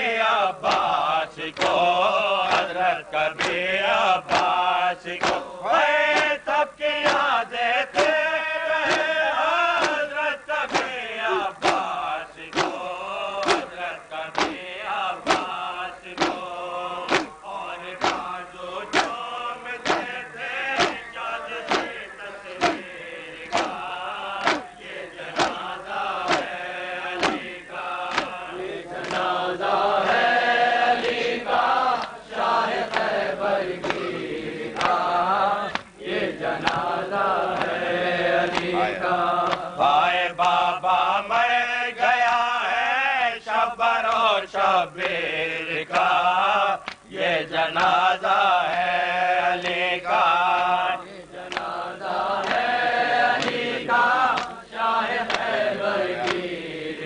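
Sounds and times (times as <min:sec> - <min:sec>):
men chanting: 0:00.0 - 0:57.0
hands slapping chests: 0:00.6 - 0:02.8, 0:03.4 - 0:03.6, 0:04.2 - 0:05.5, 0:06.1 - 0:06.4, 0:07.0 - 0:07.4, 0:08.0 - 0:08.2, 0:08.8 - 0:26.6, 0:27.2 - 0:29.4, 0:31.0 - 0:36.0, 0:36.6 - 0:37.8, 0:38.4 - 0:39.7, 0:40.4 - 0:40.7, 0:44.0 - 0:44.4, 0:46.8 - 0:47.1, 0:47.8 - 0:48.0, 0:49.6 - 0:51.8, 0:52.4 - 0:52.7, 0:53.3 - 0:55.6, 0:56.2 - 0:56.5.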